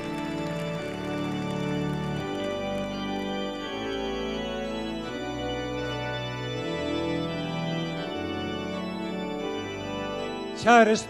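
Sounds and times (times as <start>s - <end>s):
organ playing slow chords: 0.0s - 11.0s.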